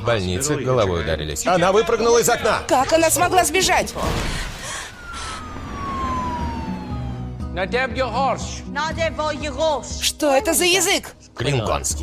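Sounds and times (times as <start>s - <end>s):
siren-like tone gliding downward: 4.9s - 8.0s.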